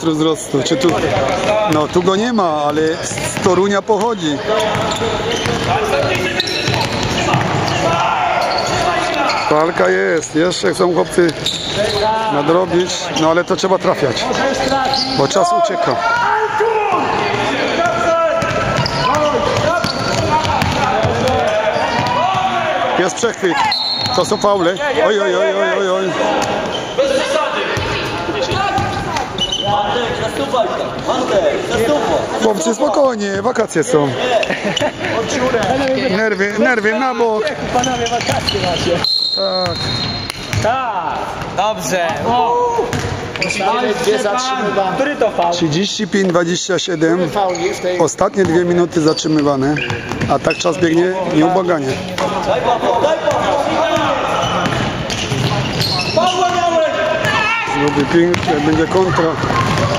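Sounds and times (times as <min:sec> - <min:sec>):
voices calling out in a gym: 0:00.0 - 0:59.9
sneakers squeaking: 0:00.4 - 0:33.5, 0:34.1 - 0:44.4, 0:46.2 - 0:59.9
basketball bouncing: 0:02.7 - 0:08.0, 0:17.3 - 0:22.5, 0:39.6 - 0:40.7, 0:42.9 - 0:43.4, 0:49.8 - 0:50.6, 0:53.3 - 0:55.9, 0:57.2 - 0:59.9.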